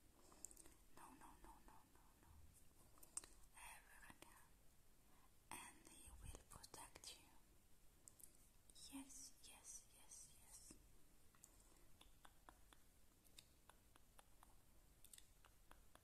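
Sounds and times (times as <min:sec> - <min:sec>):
soft close-up whispering: 0:00.0 - 0:04.6, 0:05.4 - 0:07.5, 0:08.1 - 0:16.0.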